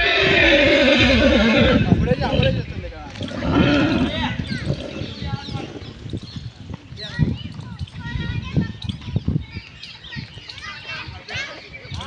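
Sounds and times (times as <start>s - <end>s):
horse neighing: 0.0s - 6.0s
hooves thudding on dirt: 0.0s - 12.0s.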